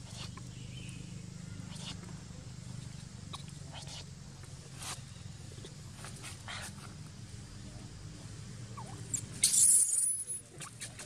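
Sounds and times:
faint rustles: 0:01.6 - 0:09.8.

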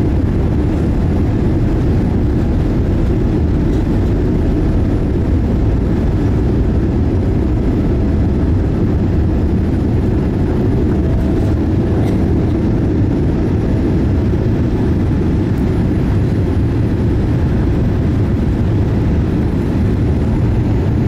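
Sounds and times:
aircraft cabin rumble while taxiing: 0:00.0 - 0:21.0.

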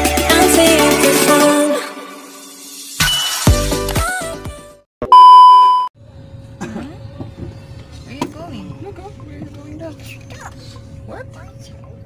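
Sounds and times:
high test-tone beep: 0:05.1 - 0:05.9.

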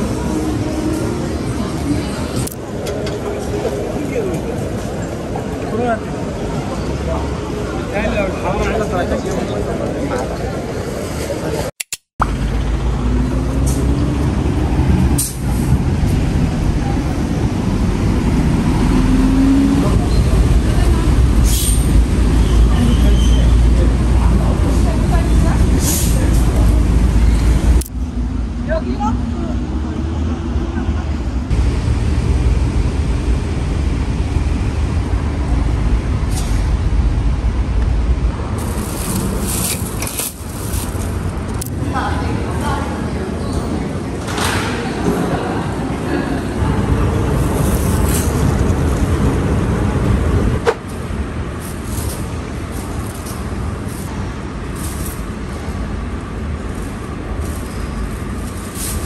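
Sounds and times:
road traffic rumble: 0:00.0 - 0:59.0.

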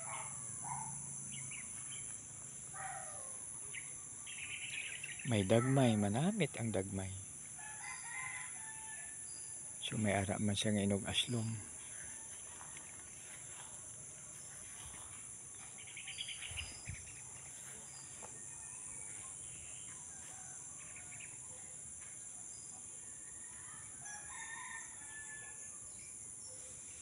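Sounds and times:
rooster crowing: 0:07.6 - 0:09.3, 0:19.8 - 0:21.4, 0:23.0 - 0:25.8.

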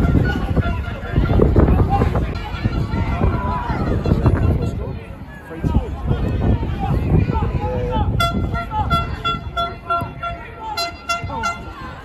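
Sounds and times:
football crowd voices: 0:00.0 - 0:12.0
horn tooting short blasts: 0:08.2 - 0:12.0.

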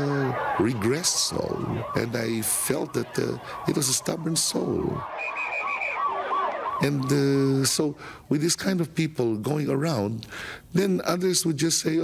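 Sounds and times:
man's voice: 0:00.0 - 0:05.0, 0:06.8 - 0:12.0
steady high tone: 0:00.0 - 0:07.0
siren yelping: 0:00.0 - 0:07.7.

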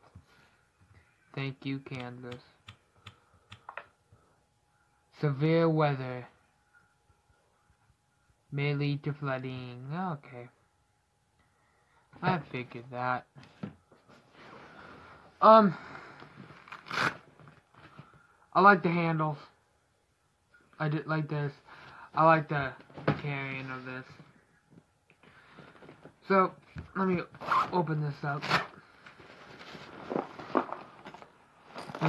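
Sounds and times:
fabric bag rustling: 0:29.2 - 0:32.0.

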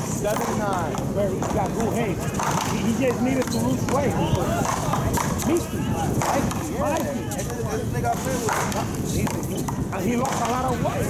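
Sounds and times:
paddles hitting rubber ball: 0:00.0 - 0:10.9
people talking: 0:00.0 - 0:11.0.

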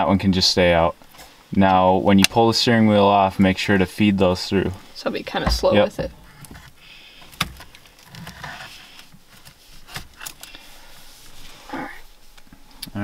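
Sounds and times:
plastic and wire rubbing: 0:05.3 - 0:12.6.

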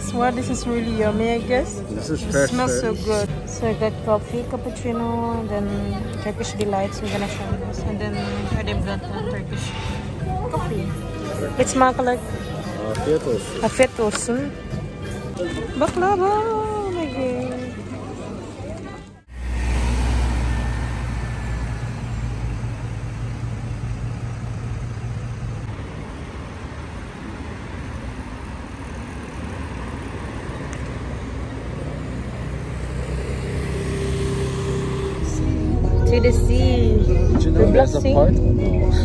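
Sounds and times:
general urban noise: 0:00.0 - 0:39.0
passing cars: 0:00.0 - 0:39.0.

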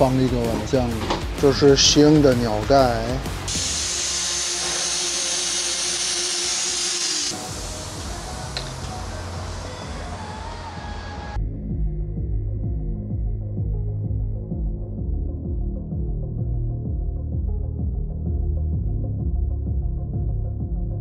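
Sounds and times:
background music: 0:00.0 - 0:21.0
compressed air hissing: 0:03.4 - 0:11.4.

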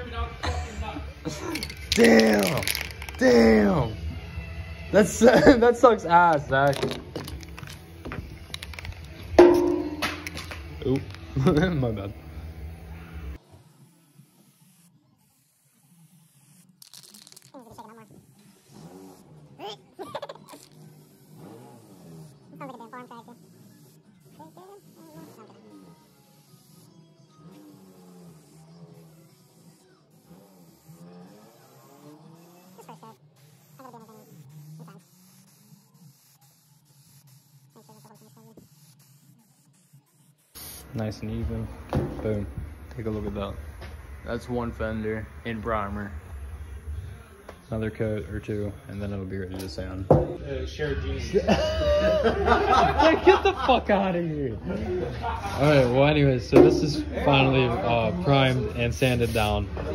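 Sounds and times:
quiet background music: 0:00.0 - 0:59.9.

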